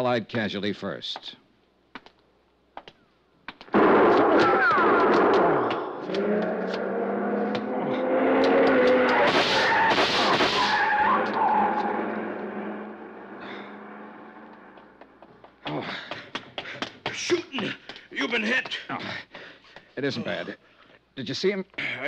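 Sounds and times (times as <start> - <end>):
gunshots: 3.7 - 6.2, 8.3 - 11.2
car racing away: 5.0 - 15.2
tyres squealing: 8.0 - 14.8.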